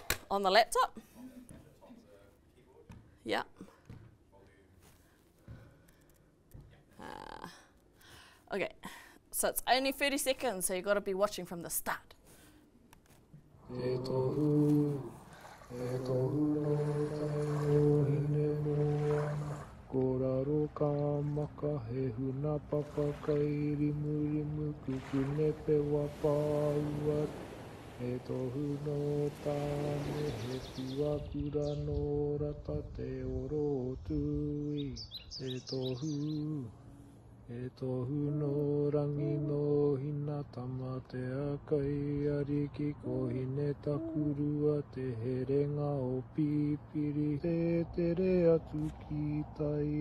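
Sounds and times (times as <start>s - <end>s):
man chanting: 13.6s - 27.4s, 37.6s - 45.8s
person singing long held notes: 13.6s - 34.9s, 37.5s - 50.0s
high bird chirps: 34.7s - 36.5s.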